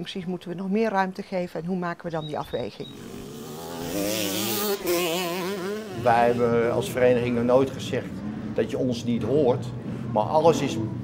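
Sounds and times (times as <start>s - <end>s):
motocross bike engine buzzing: 2.9s - 7.5s.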